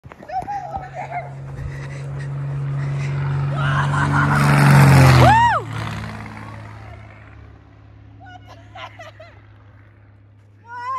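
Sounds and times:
propeller plane passing overhead: 0.0 - 10.9.

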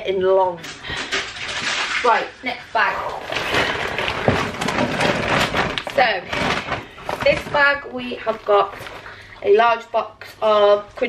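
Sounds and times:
plastic bag rustling: 0.8 - 9.6.

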